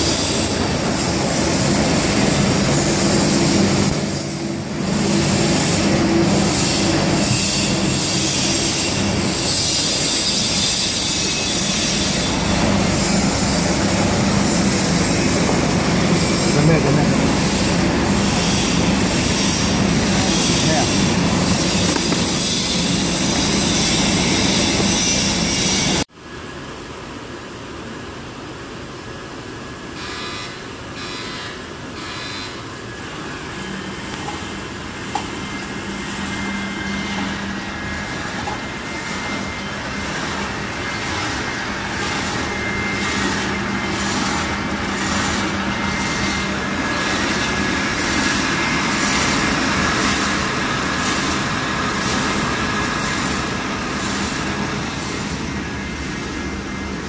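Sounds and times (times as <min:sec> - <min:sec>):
packaging machine droning: 0:33.0 - 0:57.0
high machine pulse: 0:33.4 - 0:57.0.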